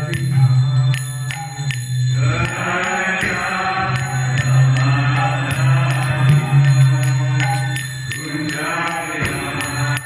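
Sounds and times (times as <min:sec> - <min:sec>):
devotional chanting: 0:00.0 - 0:10.0
hand cymbals struck: 0:00.0 - 0:10.0.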